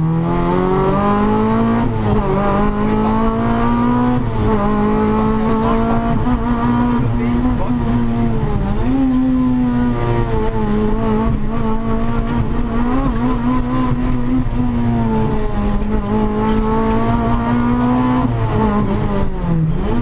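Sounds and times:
car engine at high revs: 0:00.0 - 0:20.0.

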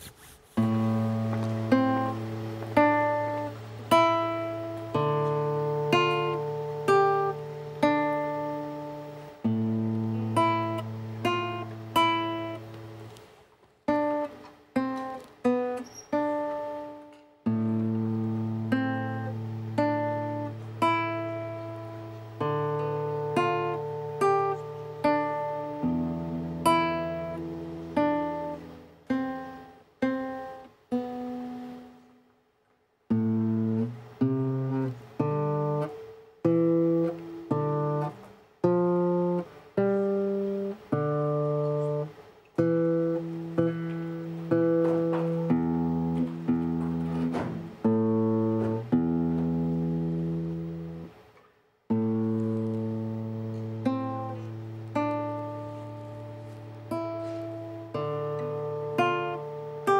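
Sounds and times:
fingerstyle acoustic guitar: 0:00.0 - 0:59.9.

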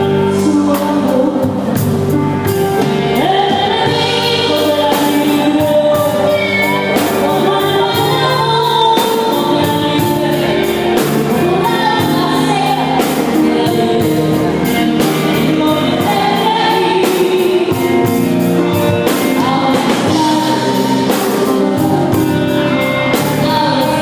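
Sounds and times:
woman singing a ballad: 0:00.0 - 0:02.2, 0:02.8 - 0:24.0
drum kit beat: 0:00.0 - 0:24.0
electric guitars: 0:00.0 - 0:24.0.

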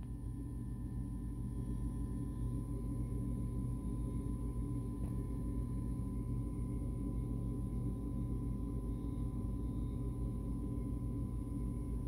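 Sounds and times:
low droning hum: 0:00.0 - 0:12.0.

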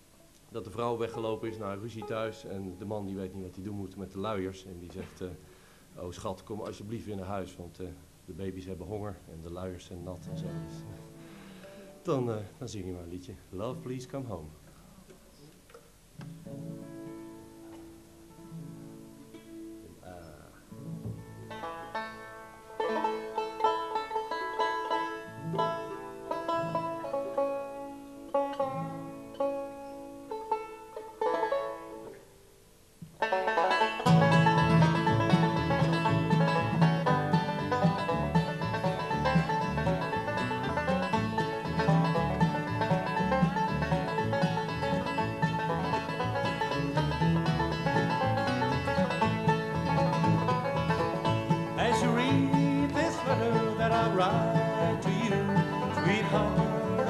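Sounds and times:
acoustic guitar: 0:00.0 - 0:57.0
banjo: 0:00.0 - 0:57.0
mandolin: 0:00.0 - 0:57.0
upright bass: 0:34.1 - 0:57.0
person singing: 0:51.8 - 0:57.0.

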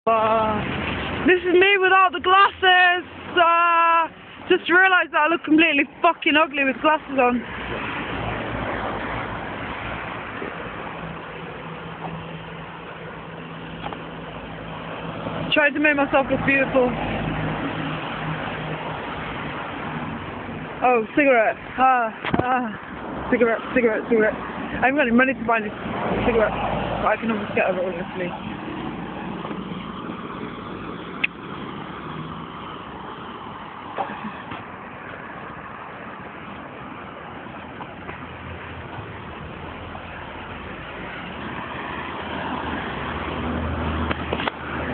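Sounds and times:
street traffic: 0:00.0 - 0:44.9.

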